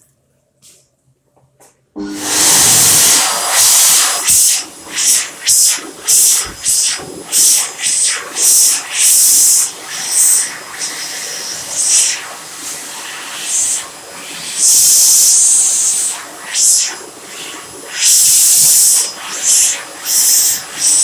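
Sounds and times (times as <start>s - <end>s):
hand dryer blowing air: 2.0s - 21.0s.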